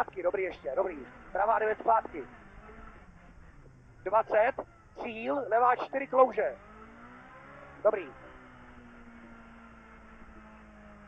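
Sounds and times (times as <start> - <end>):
car engine running from inside cabin: 0.0 - 11.0.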